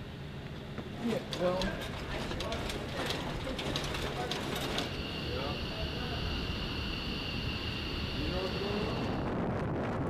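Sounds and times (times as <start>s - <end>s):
steady high whine: 0.0s - 10.0s.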